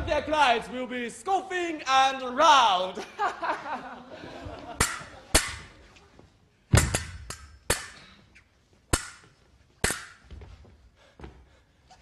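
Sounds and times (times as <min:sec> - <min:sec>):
swords clashing: 0:06.7 - 0:08.2, 0:08.9 - 0:10.2.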